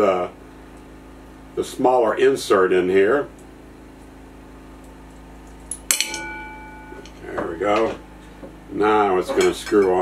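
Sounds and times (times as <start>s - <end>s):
sharp metallic clink: 5.7s - 7.3s.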